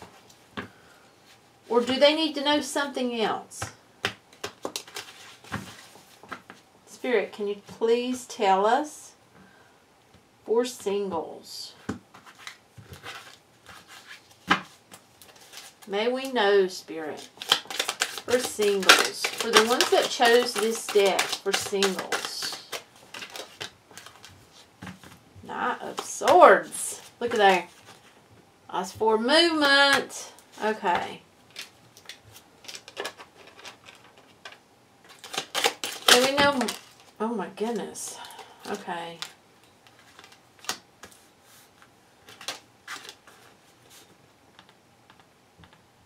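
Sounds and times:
cards rustling and clicking: 0:04.0 - 0:06.6, 0:11.8 - 0:16.4, 0:17.2 - 0:25.2, 0:25.8 - 0:28.1, 0:31.5 - 0:44.0
cards sliding and flicking: 0:17.2 - 0:24.2.

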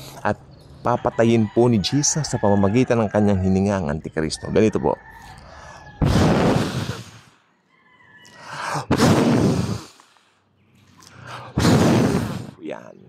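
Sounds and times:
man blowing into microphone: 0:06.0 - 0:07.4, 0:08.4 - 0:10.2, 0:11.3 - 0:12.6.

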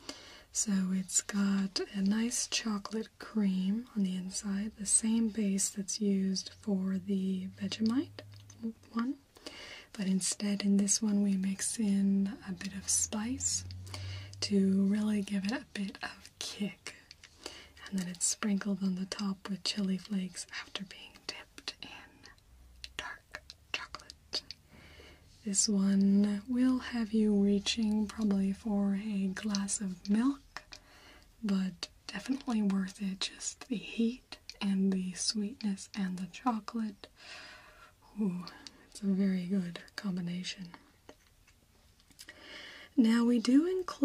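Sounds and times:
soft whispering: 0:00.0 - 0:37.2, 0:37.9 - 0:41.3
faint clicks: 0:07.6 - 0:24.7, 0:38.4 - 0:42.4.

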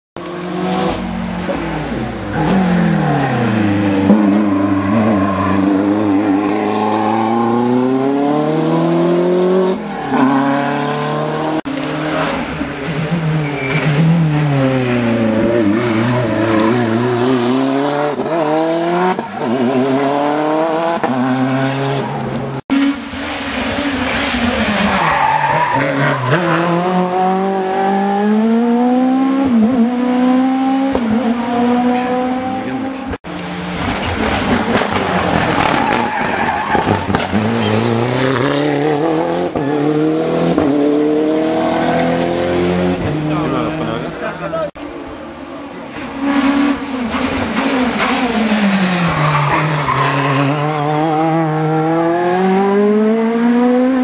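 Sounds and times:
rally car engines revving: 0:00.2 - 0:54.0.

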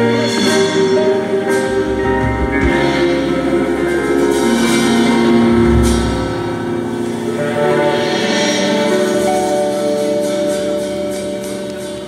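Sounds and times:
bass guitar line: 0:00.0 - 0:10.0
electric guitars sustained notes: 0:00.0 - 0:12.0.

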